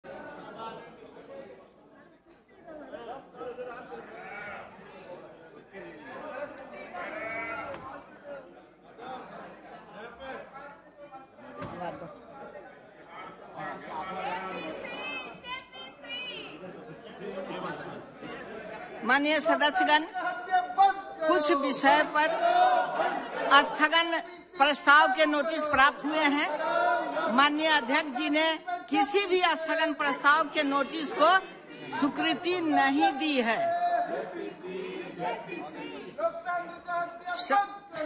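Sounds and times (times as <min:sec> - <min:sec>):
indistinct chatter of many voices: 0:00.0 - 0:38.0.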